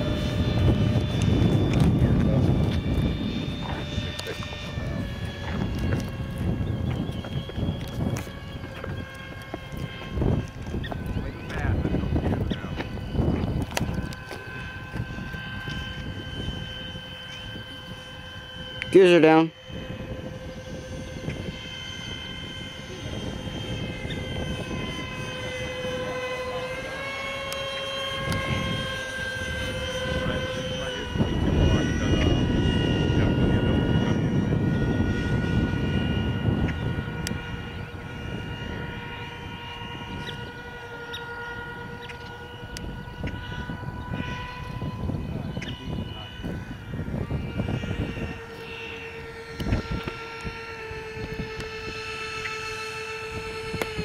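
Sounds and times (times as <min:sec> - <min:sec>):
model jet fans whining: 0:00.0 - 0:54.0.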